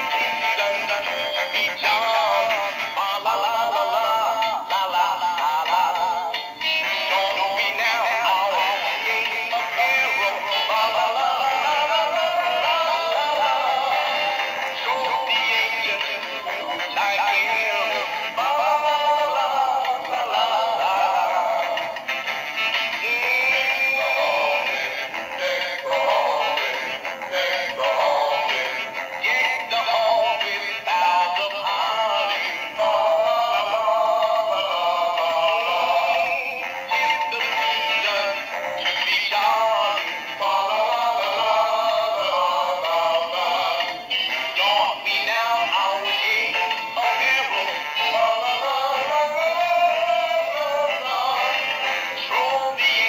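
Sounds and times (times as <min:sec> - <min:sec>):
tinny song from toy speakers: 0:00.0 - 0:53.0.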